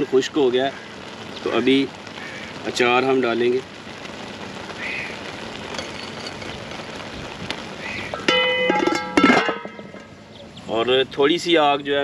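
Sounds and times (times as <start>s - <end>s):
rice bubbling in a pot: 0.0s - 12.0s.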